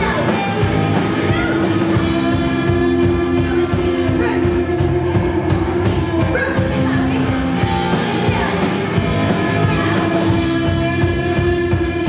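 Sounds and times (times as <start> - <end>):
electric guitar drone: 0.0 - 12.0
steady drum rhythm: 0.0 - 12.0.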